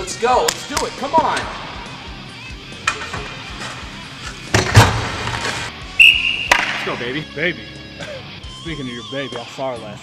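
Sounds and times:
background music: 0.0 - 10.0
loud thump: 4.5 - 5.4.

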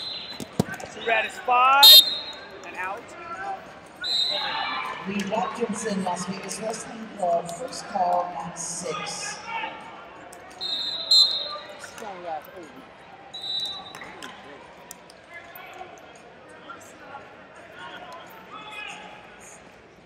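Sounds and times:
referee's whistle: 0.0 - 2.4, 4.0 - 4.6, 10.6 - 11.7, 13.4 - 14.1.

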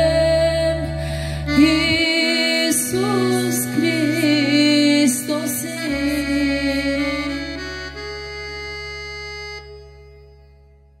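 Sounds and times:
held keyboard chord: 0.0 - 11.0.

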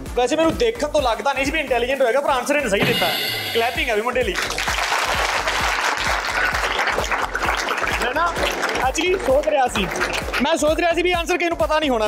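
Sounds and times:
background music with steady beat: 0.0 - 12.0
children clapping: 4.2 - 10.6.

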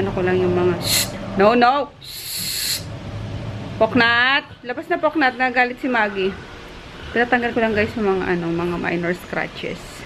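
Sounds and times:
person hushing: 2.0 - 2.9.

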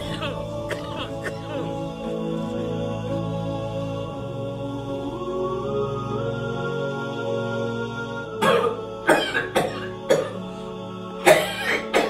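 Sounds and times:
man coughing harshly: 0.0 - 1.7, 8.4 - 10.4, 11.3 - 12.0
quiet background music: 0.0 - 12.0.

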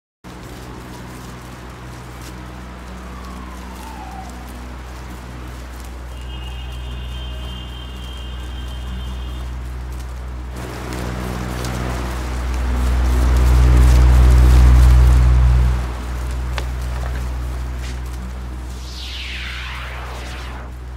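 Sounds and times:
low drone hum: 0.4 - 6.2, 9.6 - 20.9
loud full rush: 18.4 - 20.9.

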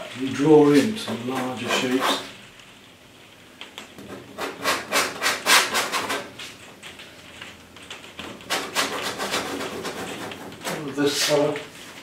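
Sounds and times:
painting knife scraping canvas: 0.8 - 2.4, 4.3 - 6.3, 8.5 - 11.9.

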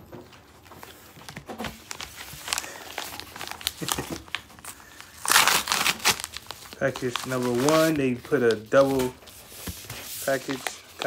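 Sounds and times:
padded mailer crinkling: 0.6 - 11.0
envelope tearing open: 1.6 - 9.0, 10.2 - 11.0.

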